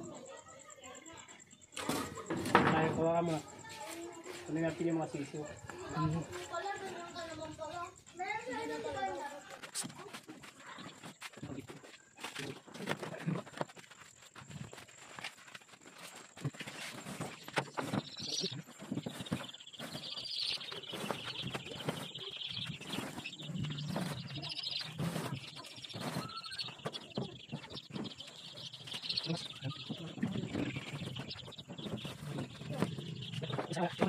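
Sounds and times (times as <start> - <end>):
chicks peeping: 1.4 - 34.0.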